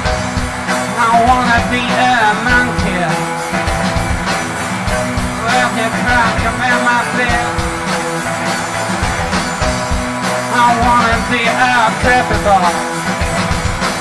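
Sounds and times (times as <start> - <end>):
bass guitar: 0.0 - 14.0
drums: 0.0 - 14.0
electric guitars: 0.0 - 14.0.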